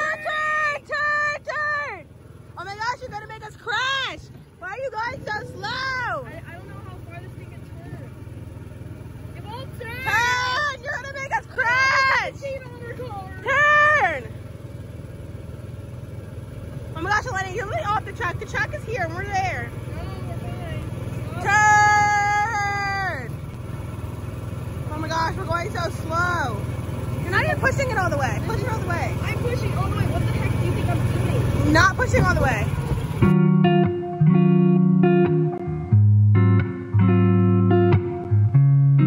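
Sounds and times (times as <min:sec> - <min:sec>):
girls squealing: 0:00.0 - 0:00.8, 0:09.8 - 0:12.5
girls shrieking: 0:00.0 - 0:02.0, 0:09.7 - 0:14.3
voices calling out: 0:00.0 - 0:33.3
small engine humming: 0:00.0 - 0:35.7.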